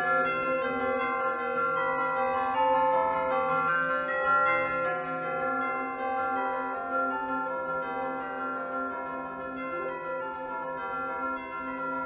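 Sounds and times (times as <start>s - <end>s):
bell-like chiming music: 0.0s - 12.0s.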